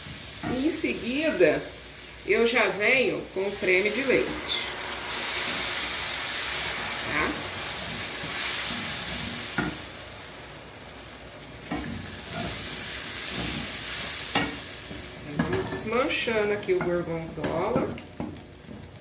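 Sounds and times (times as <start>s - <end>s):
sauce sizzling in a pan: 0.0s - 19.0s
wooden spoon scraping a pan: 11.6s - 16.0s.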